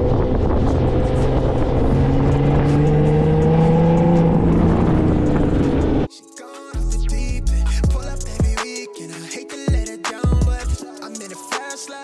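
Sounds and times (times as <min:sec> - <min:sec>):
car engine running: 0:00.0 - 0:06.1
road and wind rumble: 0:00.0 - 0:06.1.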